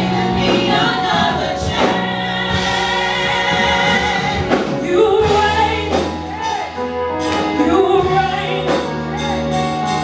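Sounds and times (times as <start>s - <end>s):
women singing gospel: 0.0s - 6.8s, 7.4s - 9.2s
band playing: 0.0s - 10.0s
low bass notes: 0.0s - 10.0s.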